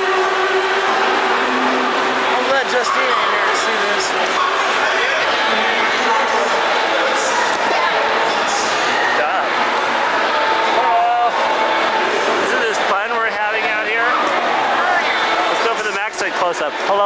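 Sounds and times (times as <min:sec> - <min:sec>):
crowd din in echoing hall: 0:00.0 - 0:17.0
people talking and calling out: 0:00.0 - 0:17.0.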